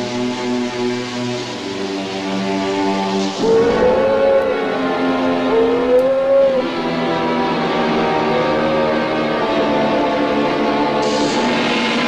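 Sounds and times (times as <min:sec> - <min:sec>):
horror film score: 0:00.0 - 0:12.0.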